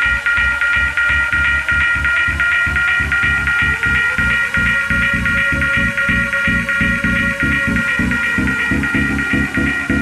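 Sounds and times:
bass-heavy techno beat: 0:00.0 - 0:10.0
pulsing high synth chord: 0:00.0 - 0:10.0.

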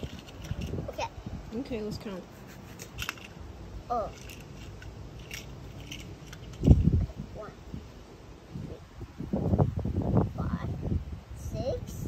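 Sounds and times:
toy cars clicking on concrete: 0:00.0 - 0:00.9, 0:02.8 - 0:06.9.

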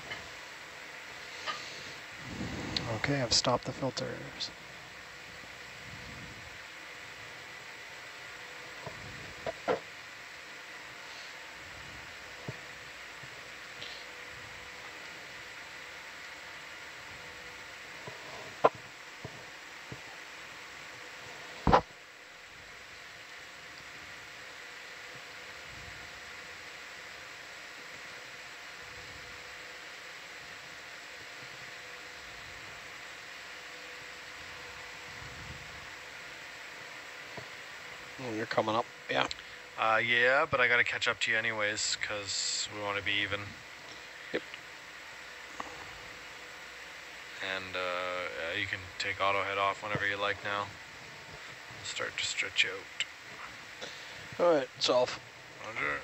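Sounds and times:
faint hum tones: 0:00.0 - 0:56.0
steady line hiss: 0:00.0 - 0:56.0.

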